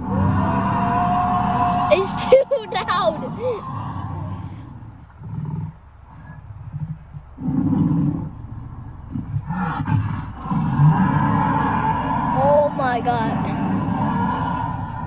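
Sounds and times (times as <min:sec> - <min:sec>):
recorded dinosaur roars and growls: 0:00.0 - 0:15.0.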